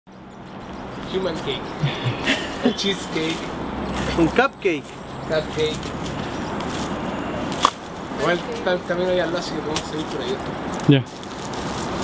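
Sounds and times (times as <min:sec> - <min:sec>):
footsteps on dry leaves and soil: 0:03.1 - 0:08.7, 0:09.8 - 0:12.0.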